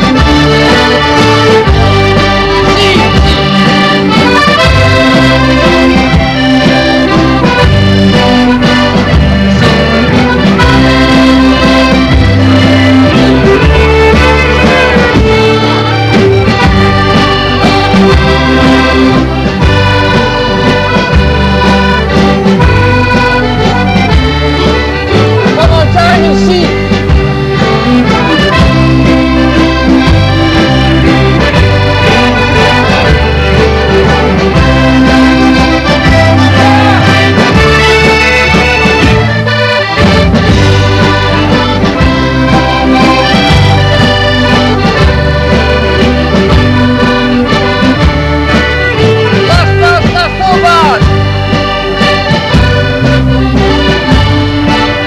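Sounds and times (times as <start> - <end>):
accordion: 0.0 - 55.0
drum kit beat: 0.0 - 55.0.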